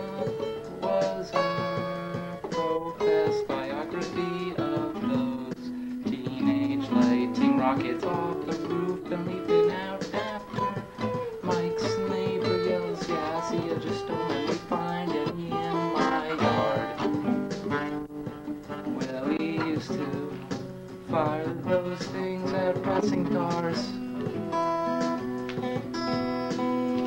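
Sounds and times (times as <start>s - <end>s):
acoustic guitar playing: 0.0s - 27.0s.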